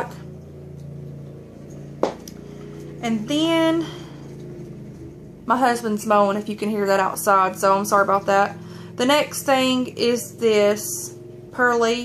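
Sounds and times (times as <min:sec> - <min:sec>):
muffled lawn mower engine: 0:00.0 - 0:12.0.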